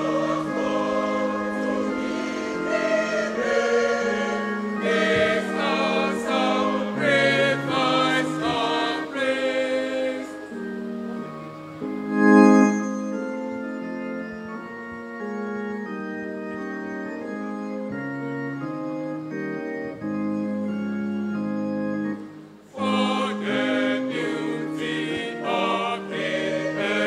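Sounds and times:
choir singing: 0:00.0 - 0:11.4, 0:22.7 - 0:27.0
organ playing sustained chords: 0:00.0 - 0:27.0.

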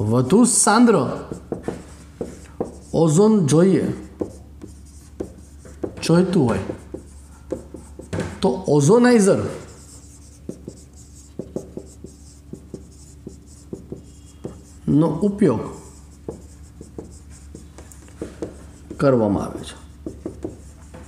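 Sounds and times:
marker pen writing on whiteboard: 0:00.2 - 0:21.0.

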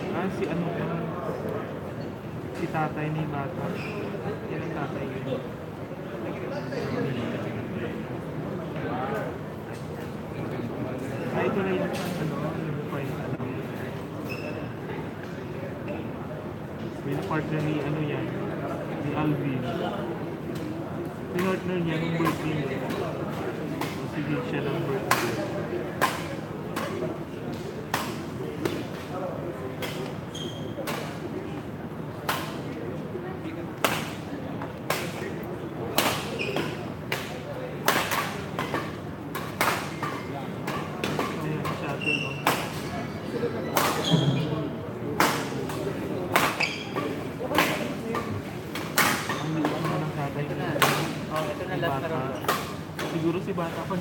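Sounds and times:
chatter of spectators: 0:00.0 - 0:54.0.

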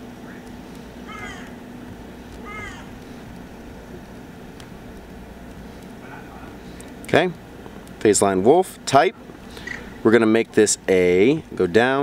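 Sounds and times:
steady low hum: 0:00.0 - 0:12.0
animal calls falling in pitch: 0:01.0 - 0:01.6, 0:02.4 - 0:03.0.

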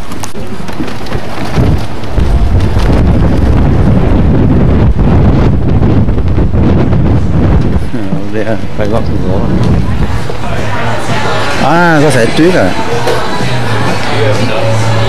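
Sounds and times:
wind buffeting microphone: 0:00.0 - 0:12.7.

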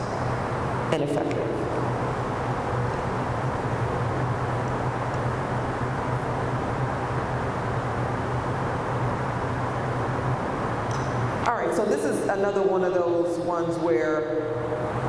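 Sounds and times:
low ventilation hum: 0:00.0 - 0:15.0.

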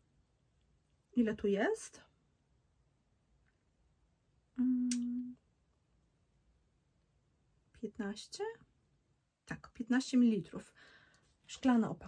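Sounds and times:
woman humming: 0:04.6 - 0:05.4.

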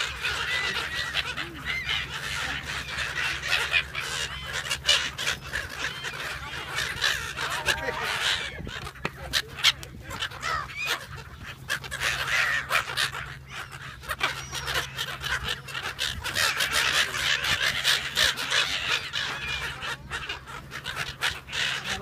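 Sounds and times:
gulls calling: 0:00.0 - 0:22.0.

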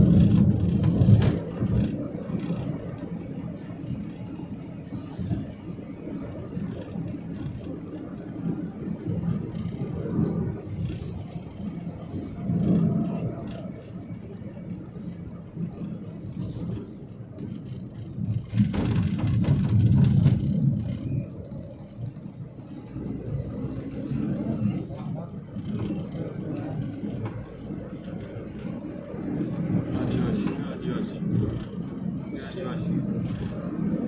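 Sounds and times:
vehicle running noise from inside: 0:00.0 - 0:34.0.

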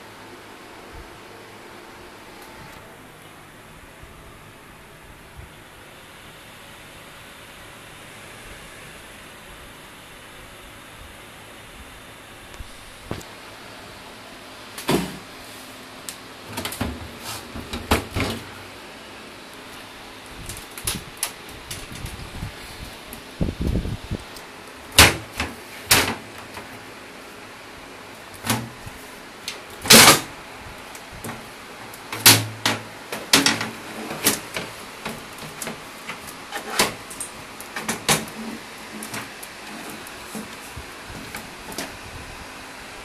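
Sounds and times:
computer fans whirring: 0:00.0 - 0:43.0.

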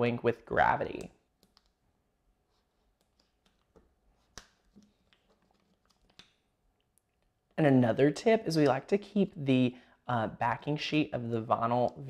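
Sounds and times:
paper crinkling and clicks: 0:03.0 - 0:06.4.

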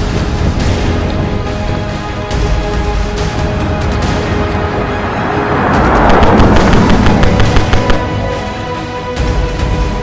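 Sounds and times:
dramatic music with percussion hits: 0:00.0 - 0:10.0
rushing sound effect: 0:03.4 - 0:08.4.

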